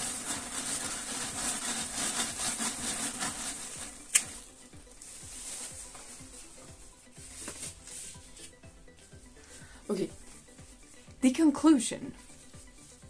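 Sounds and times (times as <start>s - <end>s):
paper towel rustling and rubbing: 0.0s - 8.7s, 9.4s - 13.0s.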